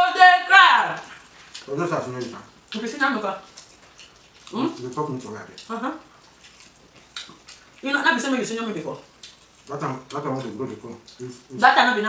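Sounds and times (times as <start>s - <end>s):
wet mouth eating sounds: 1.0s - 11.8s.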